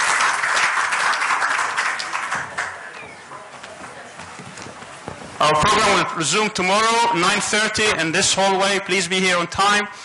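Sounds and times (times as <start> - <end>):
people moving about in a hall: 0.0 - 10.0
faint knocks and footsteps: 2.4 - 6.1
man speaking over loudspeaker: 5.4 - 10.0.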